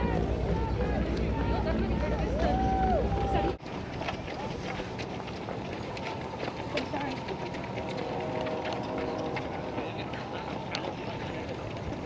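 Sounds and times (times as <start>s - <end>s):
runners' footsteps on asphalt: 0.0s - 12.0s
voices: 0.0s - 12.0s
wind buffeting microphone: 0.0s - 12.0s.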